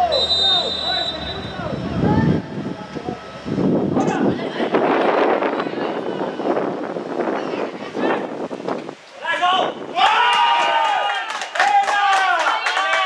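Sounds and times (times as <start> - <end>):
referee's whistle: 0.0 - 1.8
players and spectators shouting: 0.0 - 2.8, 9.2 - 13.0.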